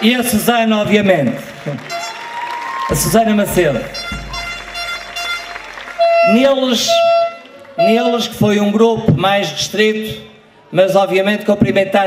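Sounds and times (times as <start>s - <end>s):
audience crowd noise: 0.0s - 12.0s.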